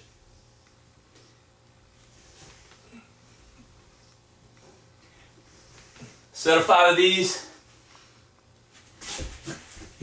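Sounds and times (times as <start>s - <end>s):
body thudding on floor: 9.0s - 10.0s.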